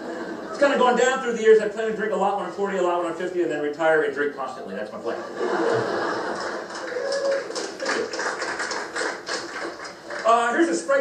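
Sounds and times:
audience laughter: 0:00.0 - 0:00.6, 0:05.1 - 0:07.0
hand claps: 0:06.4 - 0:10.4.

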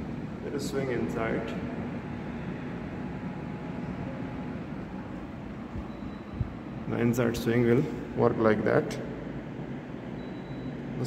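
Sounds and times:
air conditioner fan running: 0:00.0 - 0:11.0.

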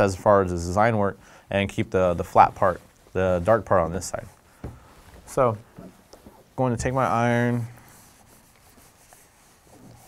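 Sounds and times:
iron rubbing over fabric: 0:07.0 - 0:10.0.

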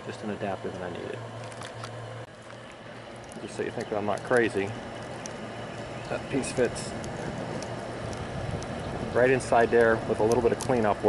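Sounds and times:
coal fire crackles: 0:00.0 - 0:11.0
forge blower air rush with hum: 0:00.0 - 0:11.0.

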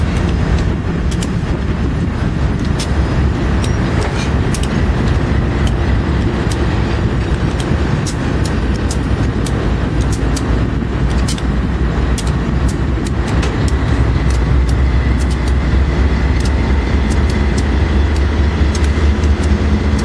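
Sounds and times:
sharp ticks: 0:00.0 - 0:01.7, 0:02.4 - 0:20.0
diesel locomotive engine rumble: 0:00.0 - 0:20.0.

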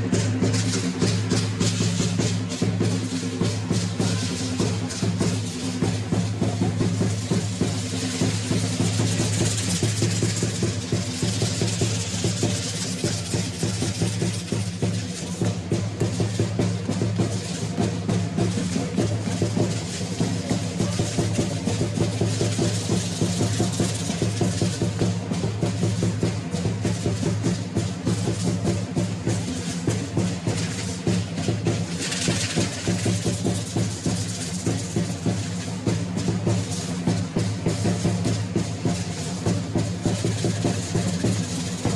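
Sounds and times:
drum beating fast rhythm: 0:00.0 - 0:41.9
rattling hiss: 0:00.0 - 0:41.9.

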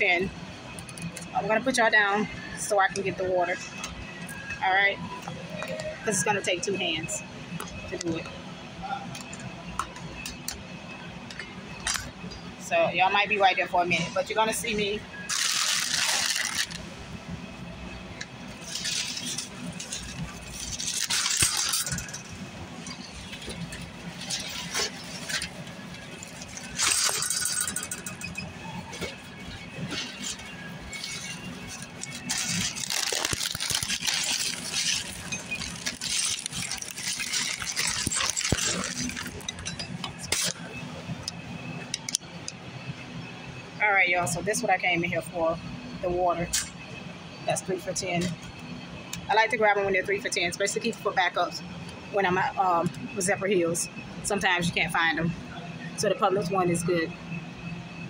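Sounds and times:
low steady hum: 0:00.0 - 0:58.0
plastic wrap crinkling: 0:15.3 - 0:16.8, 0:18.6 - 0:22.2, 0:29.8 - 0:39.6.

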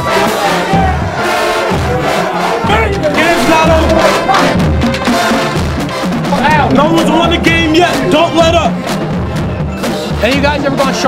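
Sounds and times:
group of men shouting: 0:00.0 - 0:05.7
music with bass-drum beat: 0:00.0 - 0:11.0.

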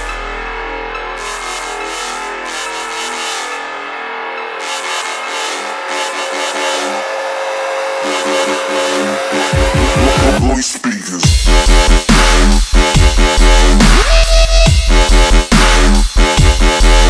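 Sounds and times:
synth chords: 0:00.0 - 0:17.0
rising synth sweep: 0:01.2 - 0:10.4
heavy bass hits: 0:09.4 - 0:10.6, 0:11.2 - 0:17.0.

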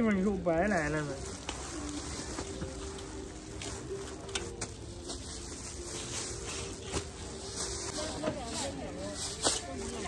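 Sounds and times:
street noise: 0:00.0 - 0:10.0
plastic bags crinkling: 0:00.5 - 0:10.0.

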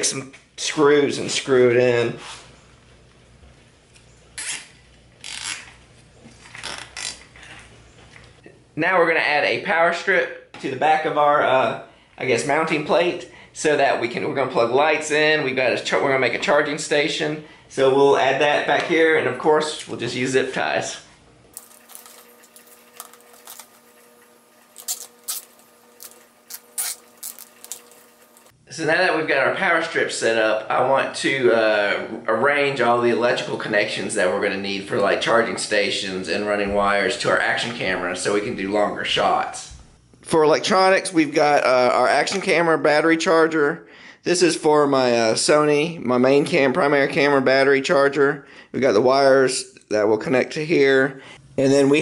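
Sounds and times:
zip tie ratcheting tight: 0:04.4 - 0:05.8, 0:06.5 - 0:07.3, 0:24.8 - 0:28.0.

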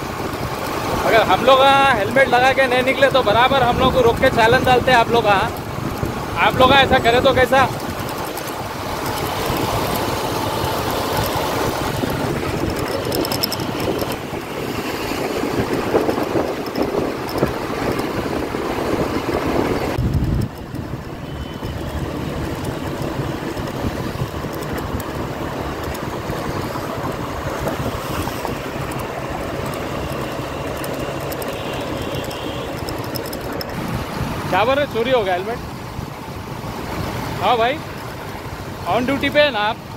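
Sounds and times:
road traffic engines and tyres: 0:00.0 - 0:39.9.

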